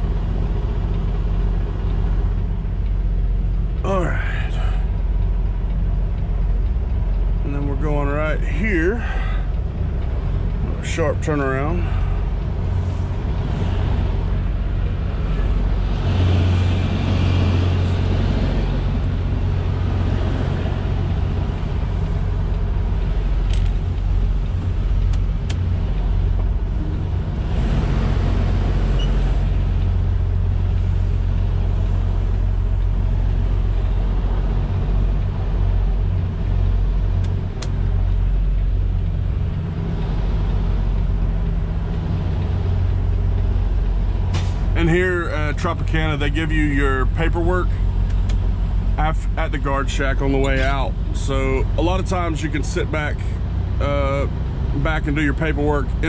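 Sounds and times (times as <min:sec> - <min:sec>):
diesel truck engine running: 0:00.0 - 0:56.0.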